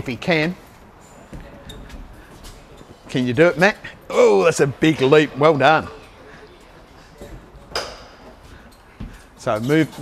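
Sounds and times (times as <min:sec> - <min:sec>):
footsteps: 0:00.7 - 0:03.9, 0:07.0 - 0:10.0.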